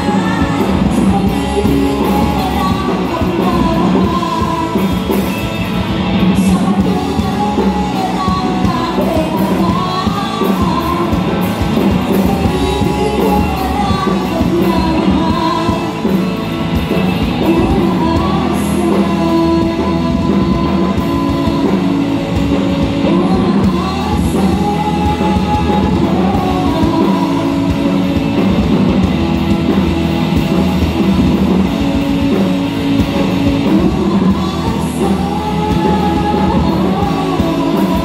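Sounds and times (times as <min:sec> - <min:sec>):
woman singing: 0:00.0 - 0:29.1, 0:33.0 - 0:38.0
live rock band: 0:00.0 - 0:38.0.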